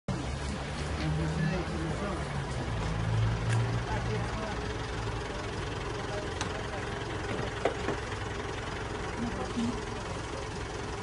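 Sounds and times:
low engine rumble: 0.1 - 11.0.

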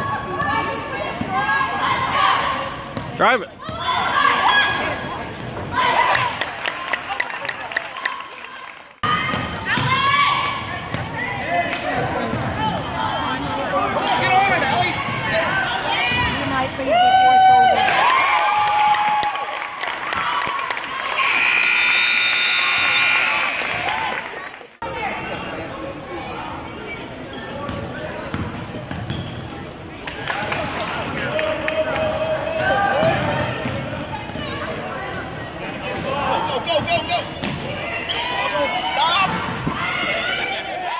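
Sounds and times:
sneakers squeaking: 0.0 - 6.4, 9.2 - 11.4, 25.2 - 30.4, 33.0 - 40.4
crowd voices and shouts: 0.0 - 40.9
basketball bouncing on court: 9.2 - 10.1, 27.7 - 29.4, 33.0 - 34.6.

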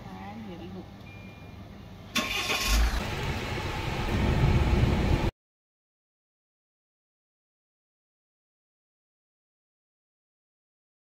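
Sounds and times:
starter motor whirr: 2.2 - 3.4
diesel engine running: 2.2 - 5.3.

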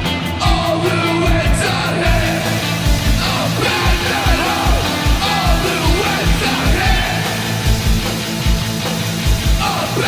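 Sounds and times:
bass guitar: 0.0 - 10.0
distorted electric guitars: 0.0 - 10.0
driving kick-drum beat: 0.0 - 10.0
shouted vocals: 0.4 - 7.6, 9.6 - 10.0.

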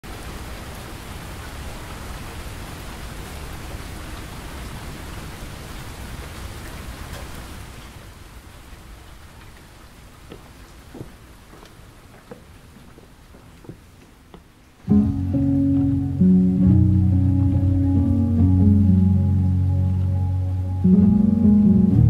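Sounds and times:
rain on brick paving: 0.0 - 22.0.

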